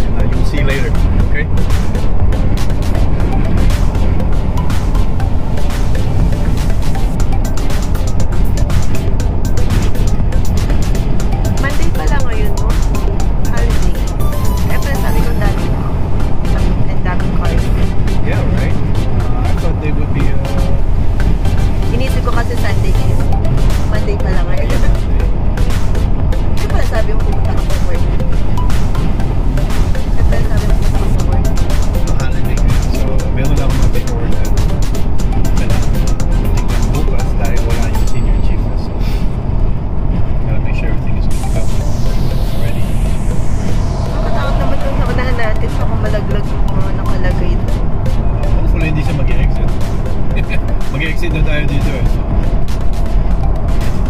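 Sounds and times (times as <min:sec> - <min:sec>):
music playing: 0:00.0 - 0:54.0
road and wind rumble in car: 0:00.0 - 0:54.0.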